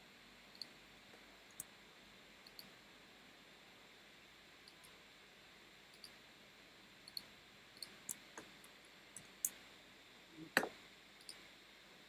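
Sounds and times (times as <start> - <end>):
low hiss: 0.0 - 12.0
computer mouse clicks: 2.4 - 2.7, 5.9 - 6.2, 10.6 - 11.4.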